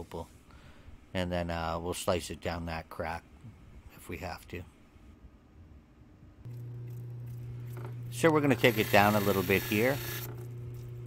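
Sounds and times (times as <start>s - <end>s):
grinding machine motor hum: 6.5s - 11.0s.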